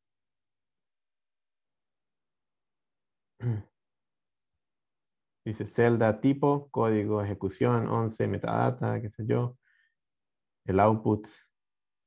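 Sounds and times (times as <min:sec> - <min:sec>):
man's sigh-like utterance: 0:03.4 - 0:03.6.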